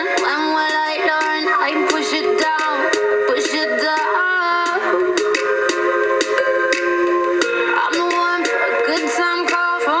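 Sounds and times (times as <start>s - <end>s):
processed lead vocal: 0.0s - 6.0s, 7.8s - 10.0s
keyboard chords: 0.0s - 10.0s.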